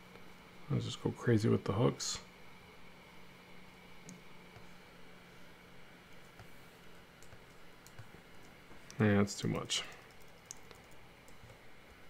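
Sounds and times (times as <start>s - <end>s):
low room hiss: 0.0s - 12.0s
computer keyboard clicks: 9.9s - 11.6s.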